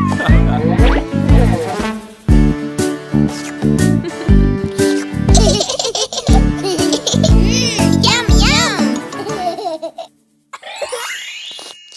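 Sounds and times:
cartoon baby giggling: 0:05.3 - 0:11.8
children's song backing music: 0:06.6 - 0:09.8.

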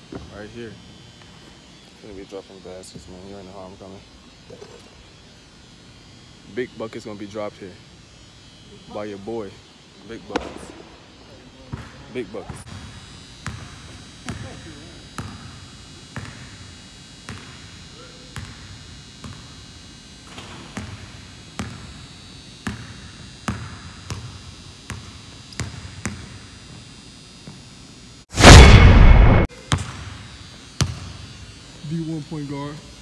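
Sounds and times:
loud burst of noise: 0:28.3 - 0:29.5.

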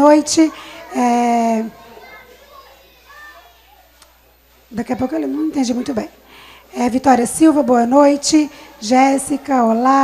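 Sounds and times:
distant people talking: 0:00.0 - 0:10.0
room hum: 0:00.0 - 0:10.0.

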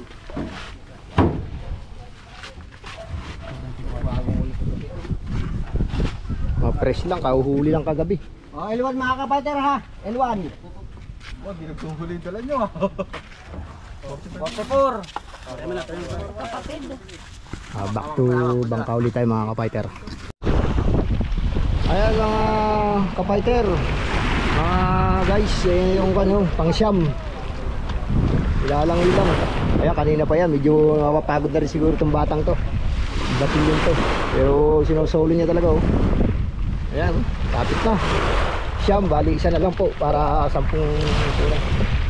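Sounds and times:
wind rumbling on microphone: 0:01.0 - 0:08.5, 0:09.8 - 0:42.0
men talking in background: 0:03.4 - 0:05.3, 0:09.8 - 0:17.1
man speaking: 0:17.7 - 0:20.2
choppy sea water: 0:20.0 - 0:42.0.

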